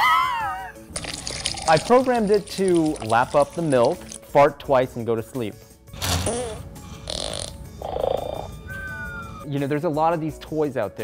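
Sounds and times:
cartoon fart sound effects: 0:06.0 - 0:08.5.

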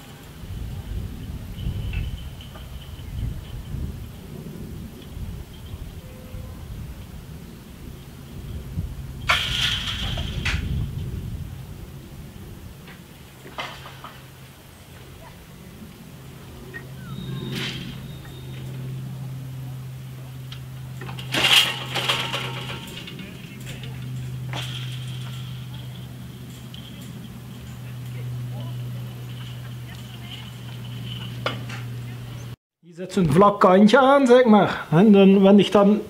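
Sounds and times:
barrier drive humming: 0:00.0 - 0:32.6.

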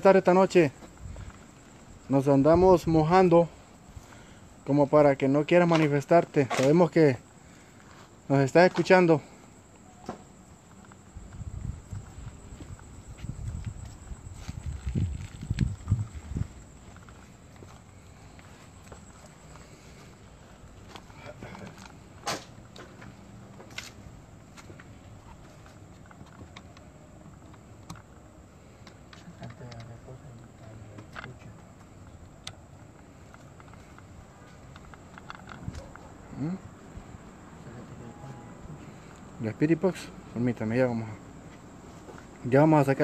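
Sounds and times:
high insect-like hum: 0:00.0 - 0:43.0
wind rumble on microphone: 0:00.8 - 0:03.1, 0:11.1 - 0:17.1.

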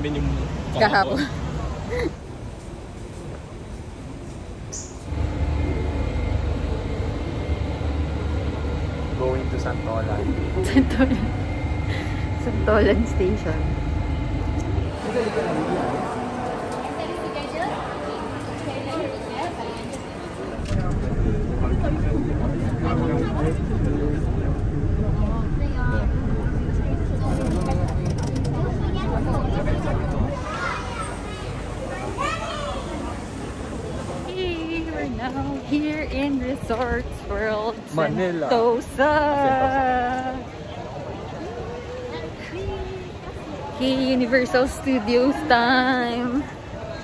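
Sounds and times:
train low rumble inside carriage: 0:01.6 - 0:16.9, 0:20.5 - 0:37.9
people's voices: 0:05.1 - 0:47.0.

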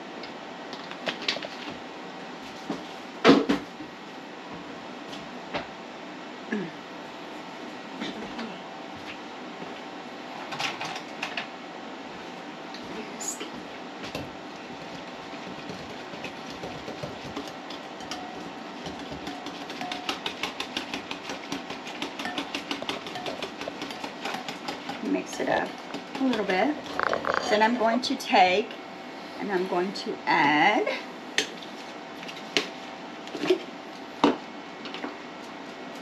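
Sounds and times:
whisk beating in a ceramic bowl: 0:14.7 - 0:27.6.

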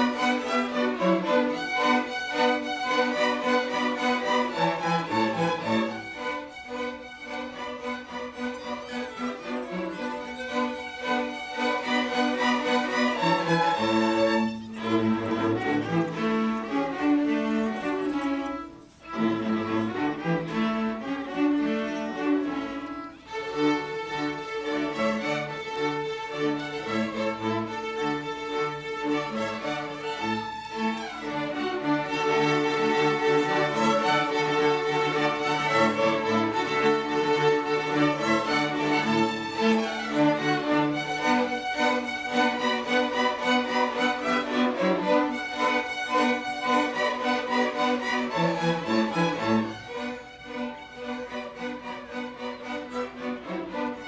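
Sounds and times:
cello line: 0:00.0 - 0:54.0
violin melody: 0:00.0 - 0:54.0.

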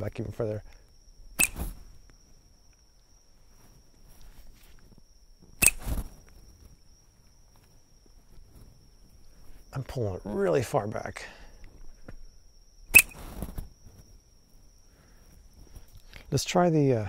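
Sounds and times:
high insect chirring: 0:00.0 - 0:17.0
slingshot snaps: 0:01.4 - 0:01.7, 0:05.6 - 0:06.0, 0:12.9 - 0:13.2.

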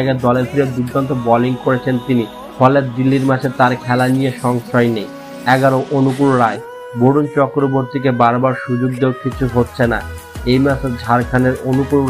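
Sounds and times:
man's voice with sliding notes: 0:00.0 - 0:12.0.

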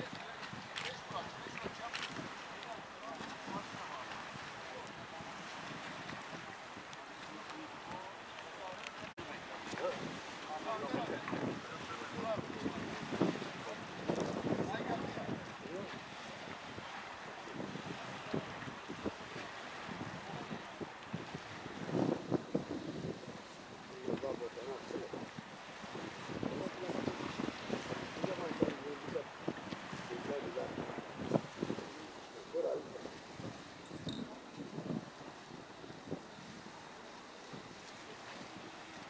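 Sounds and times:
wind buffeting microphone: 0:00.0 - 0:39.0
low indistinct talk: 0:23.8 - 0:33.1.

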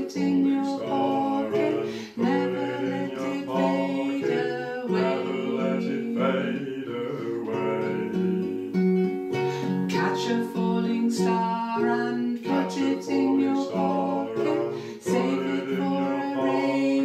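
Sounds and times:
classical guitar: 0:00.0 - 0:17.0
woman singing: 0:00.0 - 0:17.0.

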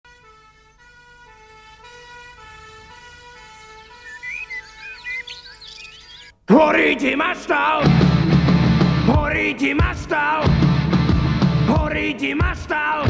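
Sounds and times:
two-tone emergency siren: 0:00.0 - 0:06.3
birds chirping: 0:00.6 - 0:06.4.

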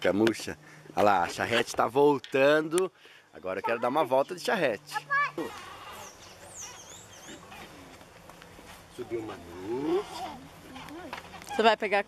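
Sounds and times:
quiet outdoor background: 0:00.0 - 0:12.0.

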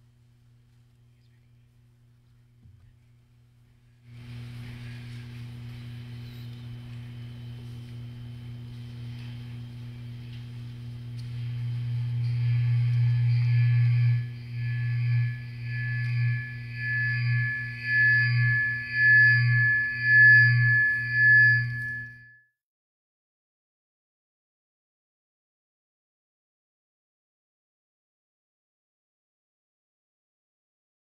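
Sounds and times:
low sound system hum: 0:00.0 - 0:22.2
pulsing electronic tones: 0:11.4 - 0:22.3.

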